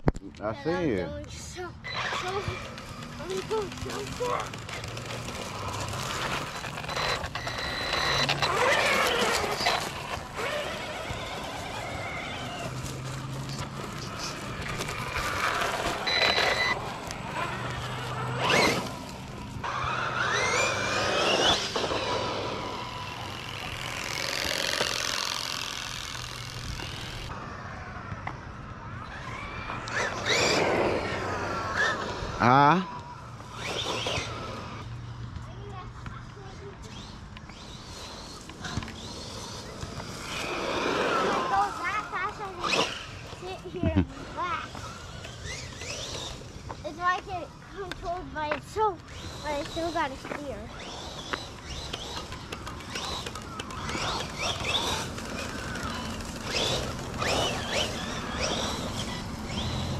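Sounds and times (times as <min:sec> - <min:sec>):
toy truck electric motor whining: 0:00.6 - 0:28.0, 0:28.8 - 0:34.9, 0:36.4 - 0:59.9.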